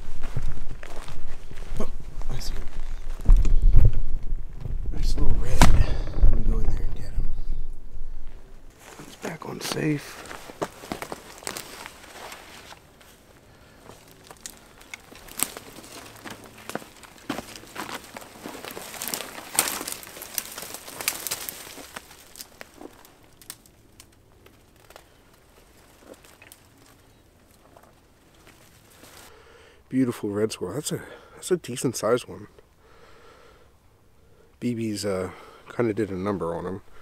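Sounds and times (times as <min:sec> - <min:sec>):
footsteps crunching dry leaves: 0:00.0 - 0:03.3, 0:08.7 - 0:29.4
twigs crackling and snapping: 0:00.0 - 0:29.4.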